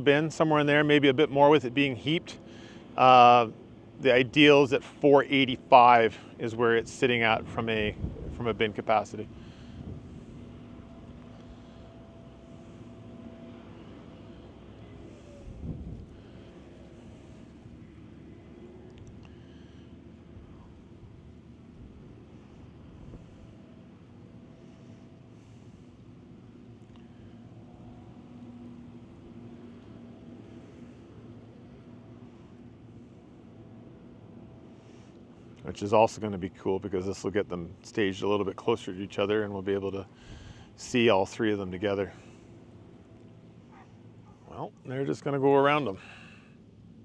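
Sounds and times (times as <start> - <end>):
distant combine harvesters droning: 0.0 - 47.0
distant farm machinery rumble: 0.0 - 47.0
wind on microphone: 7.8 - 8.6, 15.4 - 16.2.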